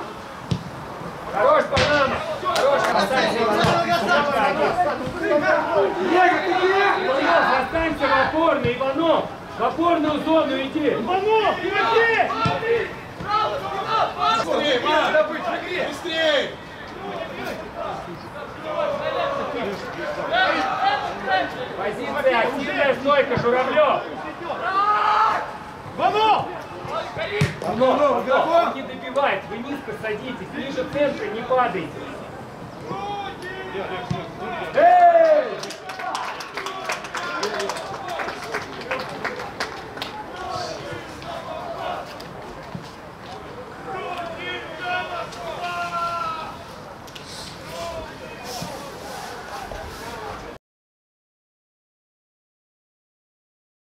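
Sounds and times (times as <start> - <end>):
men shouting calls: 1.3 - 32.2, 32.8 - 38.3, 40.2 - 42.1, 43.8 - 46.7
people shouting: 24.3 - 27.4, 43.9 - 46.6.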